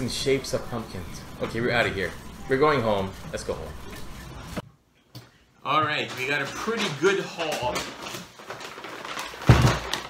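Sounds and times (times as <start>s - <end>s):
paper bag rustling: 6.0s - 10.0s
bag thumping on wooden desk: 9.4s - 10.0s.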